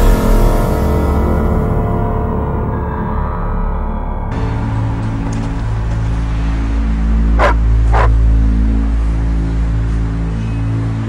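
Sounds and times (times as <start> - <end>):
low background music drone: 0.0 - 11.0
dog barking: 7.4 - 8.2.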